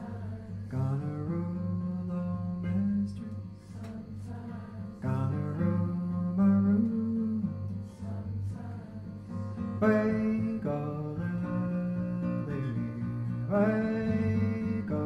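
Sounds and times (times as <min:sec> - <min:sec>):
acoustic guitar: 0:00.0 - 0:15.0
man singing: 0:00.0 - 0:15.0.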